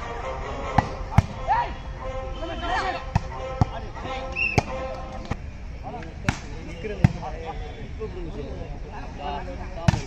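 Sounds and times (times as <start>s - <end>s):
people shouting: 0.6s - 3.4s.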